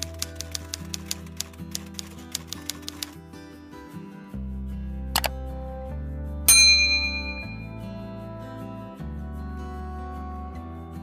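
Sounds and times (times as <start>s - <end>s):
typewriter typing clicks: 0.0s - 3.2s
background music: 0.0s - 11.0s.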